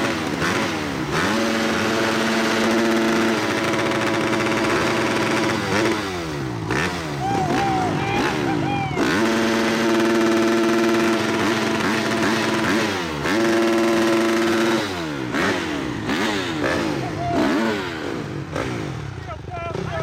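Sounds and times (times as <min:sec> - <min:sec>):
motocross bike engine revving: 0:00.0 - 0:20.0
voices calling out: 0:06.8 - 0:10.3, 0:16.5 - 0:20.0.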